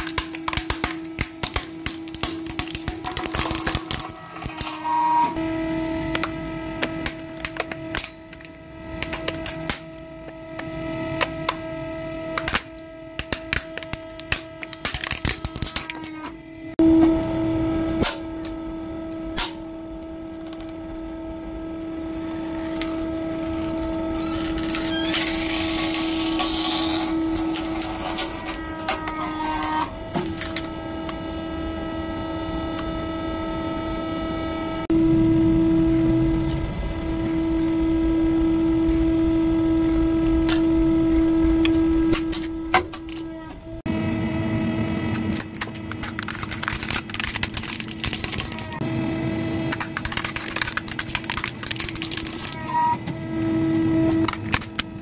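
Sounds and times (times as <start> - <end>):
plastic cracking and snapping: 0.0 - 4.7, 6.1 - 10.0, 12.3 - 16.2, 45.4 - 48.8, 49.8 - 52.7
crackling noise: 21.9 - 29.8, 45.0 - 48.8, 49.6 - 53.0.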